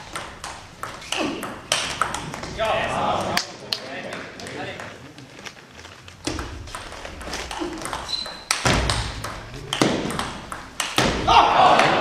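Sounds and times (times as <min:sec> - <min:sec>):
loud table tennis hits: 0:00.0 - 0:03.5, 0:06.2 - 0:12.0
table tennis ball clicking: 0:06.3 - 0:11.0.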